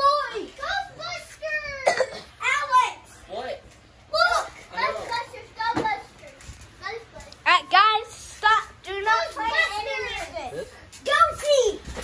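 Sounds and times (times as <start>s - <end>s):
children calling and squealing: 0.0s - 3.3s, 4.0s - 12.0s.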